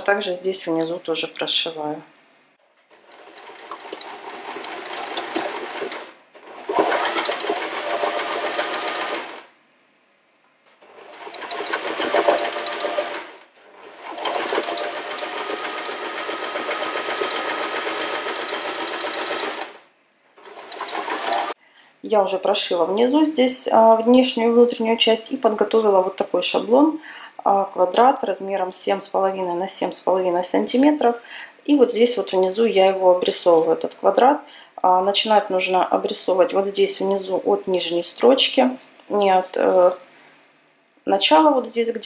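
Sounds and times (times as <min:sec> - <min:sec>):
sewing machine stitching: 0:02.9 - 0:09.5, 0:10.8 - 0:21.6.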